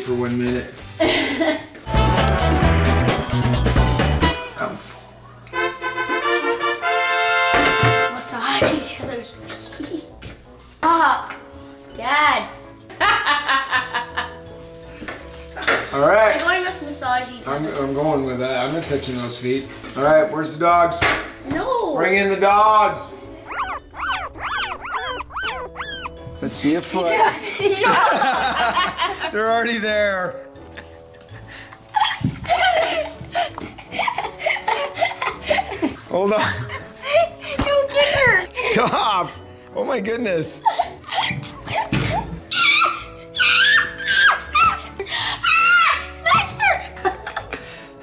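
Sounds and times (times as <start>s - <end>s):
background music: 0.0s - 4.8s, 5.4s - 48.0s
puppies yipping: 23.4s - 26.2s
child shrieking with laughter: 23.5s - 26.1s.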